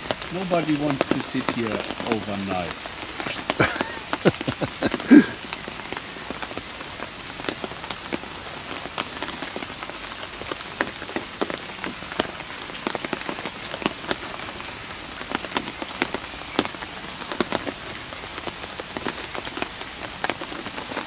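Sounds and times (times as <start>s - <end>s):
rain falling: 0.0s - 21.0s
sharp raindrops striking close: 0.0s - 21.0s.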